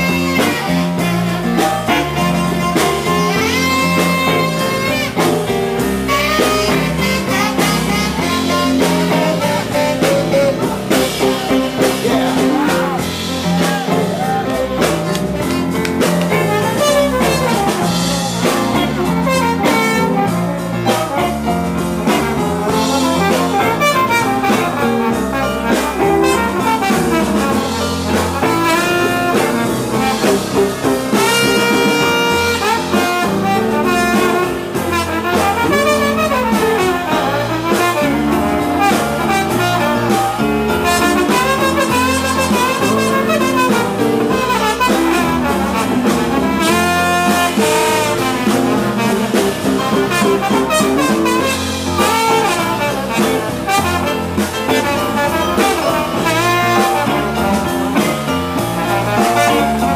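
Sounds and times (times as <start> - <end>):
rhythm and blues band playing: 0.0 - 59.9
trombone lead: 0.0 - 59.9.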